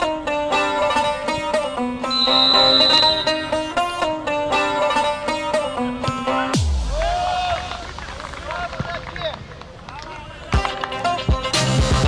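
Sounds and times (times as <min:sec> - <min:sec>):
open-air ambience: 0:00.0 - 0:12.0.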